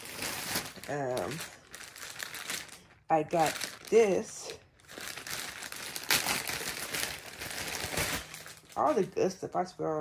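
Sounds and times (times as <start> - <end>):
packaging crinkling and rustling: 0.0 - 9.6.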